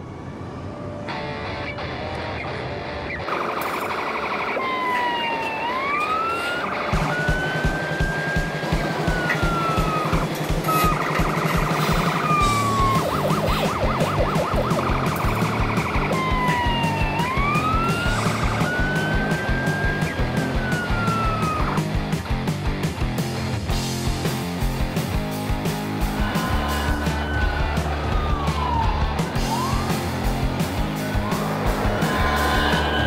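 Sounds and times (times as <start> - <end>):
electronic toy siren: 3.2 - 21.8, 26.1 - 30.2, 31.1 - 33.0
music with steady beat: 6.8 - 33.0.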